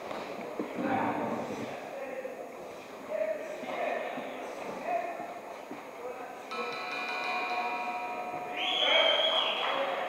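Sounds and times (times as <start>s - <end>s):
shrill high tone with noise rush: 6.5s - 10.0s.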